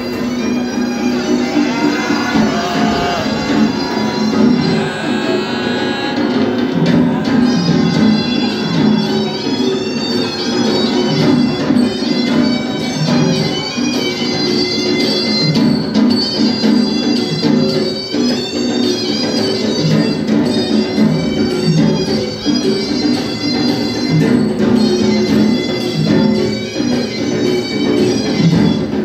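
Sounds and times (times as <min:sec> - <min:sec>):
drums: 0:00.0 - 0:29.0
shrill reedy pipe melody: 0:00.0 - 0:29.0.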